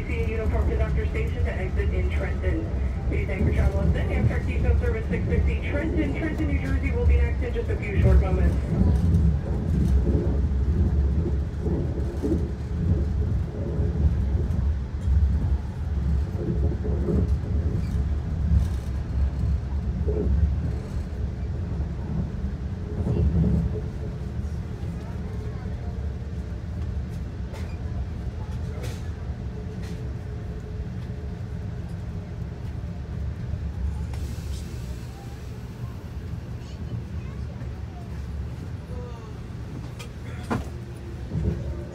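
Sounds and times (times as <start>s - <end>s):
train wheels rumbling on rails: 0.0s - 41.9s.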